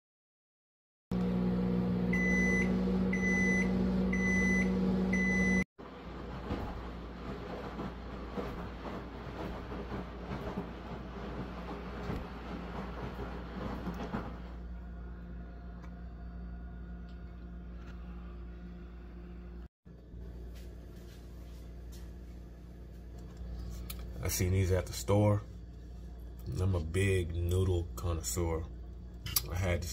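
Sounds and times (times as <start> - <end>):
microwave oven humming: 1.1 - 29.9
microwave beeping: 1.2 - 5.7.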